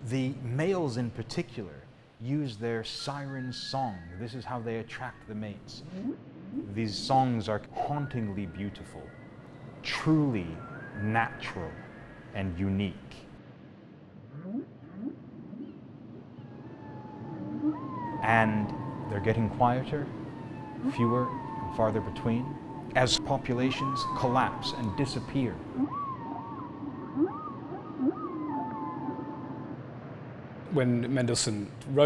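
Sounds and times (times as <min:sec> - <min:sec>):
steady background hiss: 0:00.0 - 0:14.2, 0:15.3 - 0:32.0
whale song moans: 0:05.8 - 0:09.3, 0:14.3 - 0:29.8.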